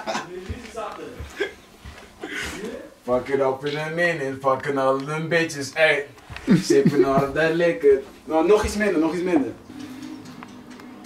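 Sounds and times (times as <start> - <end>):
chuckle: 6.4 - 7.4.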